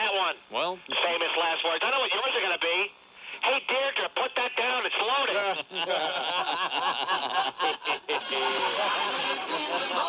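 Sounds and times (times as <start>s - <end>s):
thin talk radio speech: 0.0s - 5.8s, 7.6s - 10.0s.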